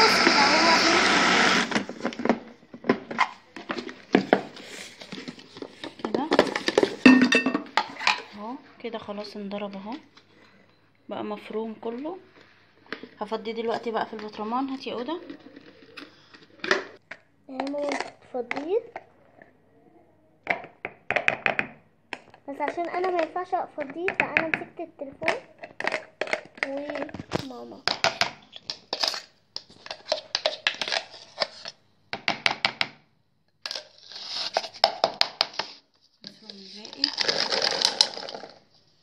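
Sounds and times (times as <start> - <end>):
utensil scraping plastic container: 0.0 - 2.4, 35.6 - 38.6.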